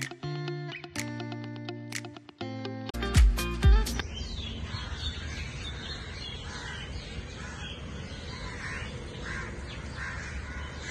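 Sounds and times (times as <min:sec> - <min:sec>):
crows cawing: 0:04.6 - 0:10.9.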